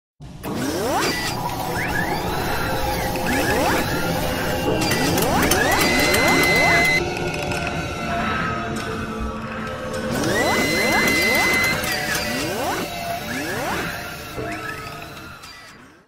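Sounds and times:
machinery whirring and clattering: 0:00.2 - 0:16.0
rising servo whines: 0:00.4 - 0:07.1, 0:08.8 - 0:16.0
steady high tone: 0:01.5 - 0:07.1, 0:10.0 - 0:15.1.

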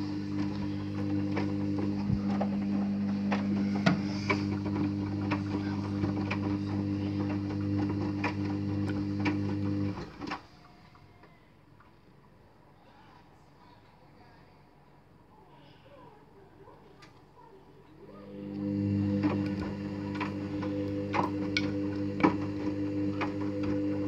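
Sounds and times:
washing machine motor hum: 0:00.0 - 0:10.4, 0:18.1 - 0:24.0.

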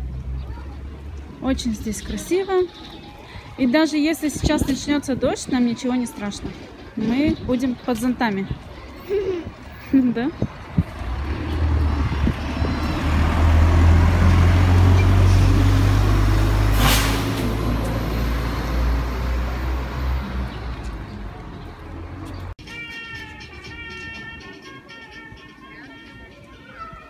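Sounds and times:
bus diesel engine rumbling: 0:04.4 - 0:22.6.

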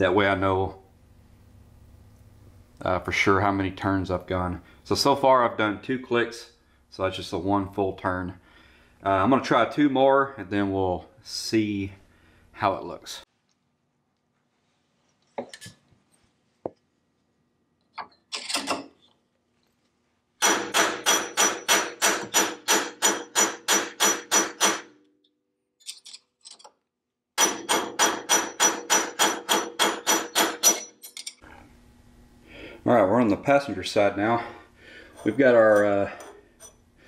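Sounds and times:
mallet striking screwdriver on metal: 0:27.4 - 0:31.2.

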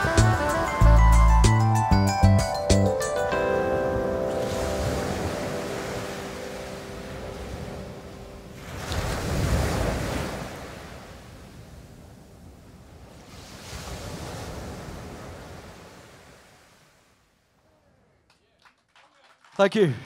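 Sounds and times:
ocean surf sound effect: 0:00.0 - 0:01.9, 0:03.0 - 0:17.2
held keyboard notes: 0:00.0 - 0:08.5.

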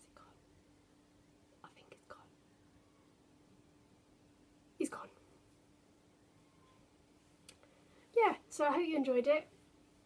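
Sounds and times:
faint breathy whispers: 0:00.0 - 0:00.5, 0:01.6 - 0:03.0
faint steady hum: 0:00.0 - 0:10.0.

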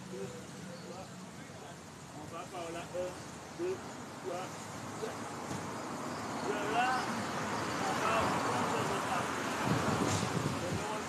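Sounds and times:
passing vehicle: 0:00.0 - 0:11.0.

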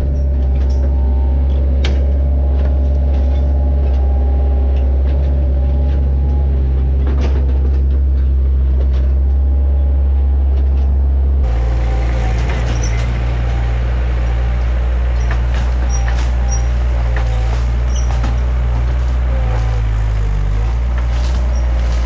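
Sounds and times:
diesel engine under load: 0:00.0 - 0:22.0
debris cracking and knocking: 0:12.4 - 0:22.0.

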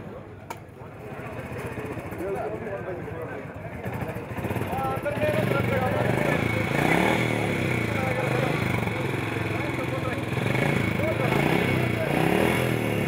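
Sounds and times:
people talking: 0:00.0 - 0:13.0
motorcycle engine running: 0:01.0 - 0:13.0.

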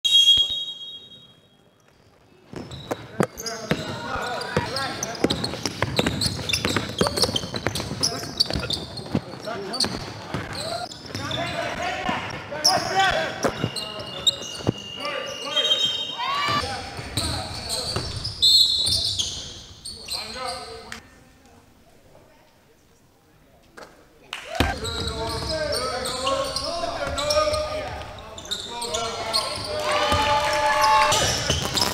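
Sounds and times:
basketball bouncing on wooden court: 0:04.6 - 0:09.2
short high squeals: 0:13.6 - 0:16.6
players shouting: 0:27.1 - 0:31.6.

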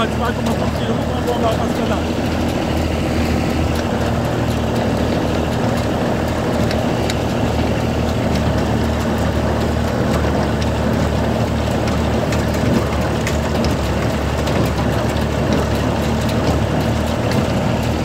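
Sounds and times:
baler mechanism rattling: 0:00.0 - 0:18.0
tractor engine running under load: 0:00.0 - 0:18.0.

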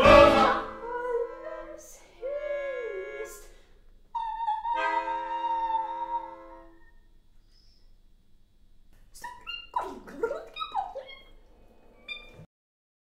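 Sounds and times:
wailing pitched tones sliding: 0:04.2 - 0:06.9.

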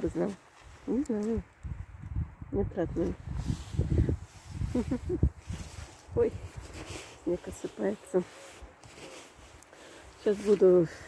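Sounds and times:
bumps and rustles on microphone: 0:02.9 - 0:09.6
woman murmuring: 0:04.6 - 0:05.3.

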